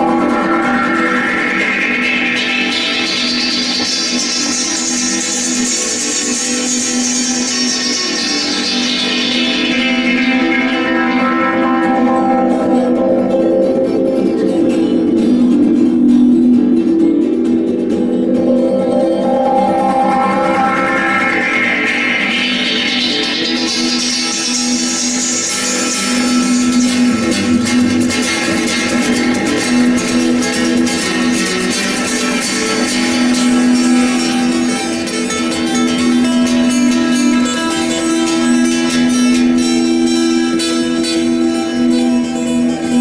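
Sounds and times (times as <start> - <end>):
amplified acoustic guitar plucked: 0.0 - 43.0
bright high tone rising in pitch: 11.8 - 22.7.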